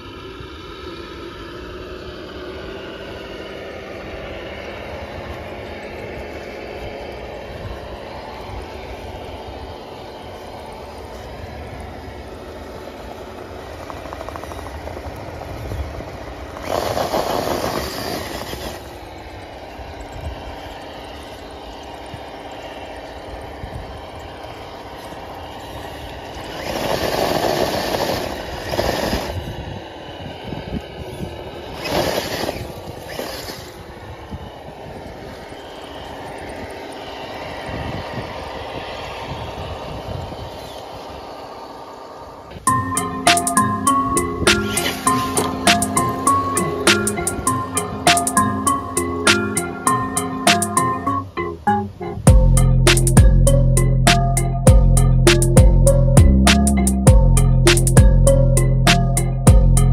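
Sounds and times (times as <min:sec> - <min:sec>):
rc truck motor whining: 0:00.0 - 0:59.9.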